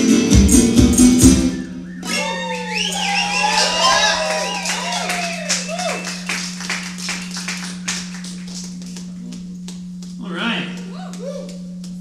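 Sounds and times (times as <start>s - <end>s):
low electrical hum: 0.1s - 12.0s
audience cheering and whooping: 2.0s - 7.9s
scattered clapping: 3.4s - 12.0s.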